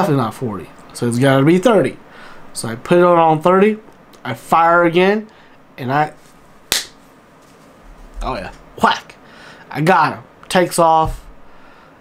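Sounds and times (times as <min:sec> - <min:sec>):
finger snap: 0:06.7 - 0:07.0.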